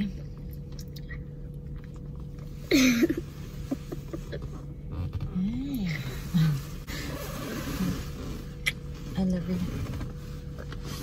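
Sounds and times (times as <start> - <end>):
car idling hum: 0.0 - 11.0
soft rustling: 2.4 - 11.0.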